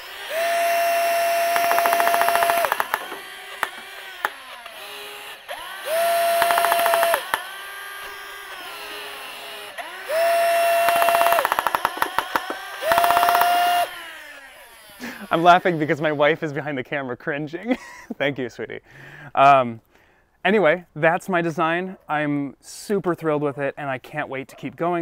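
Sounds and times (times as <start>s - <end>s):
motors high whine: 0.0s - 16.0s
rapid full-auto clatter of balls: 1.4s - 4.8s, 6.3s - 8.2s, 10.8s - 14.0s.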